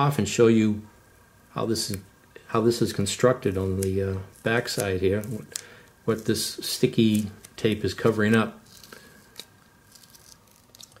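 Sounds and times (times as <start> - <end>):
tape crackles: 3.5 - 11.0
adhesive tape peeling: 7.0 - 11.0.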